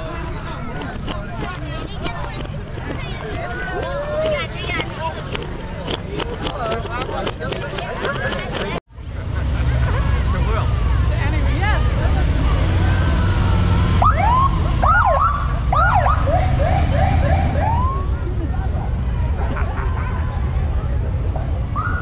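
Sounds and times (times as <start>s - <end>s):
police motorcycle sirens whooping: 12.1s - 18.3s, 21.8s - 22.0s.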